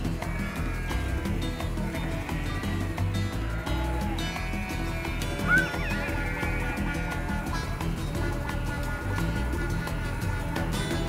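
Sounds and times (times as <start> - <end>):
music with steady beat: 0.0 - 11.0
sheep bleat: 0.0 - 11.0.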